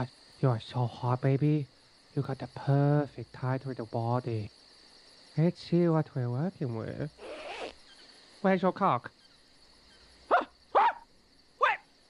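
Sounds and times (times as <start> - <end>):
sharp yelping calls: 7.2 - 8.1, 9.2 - 11.9.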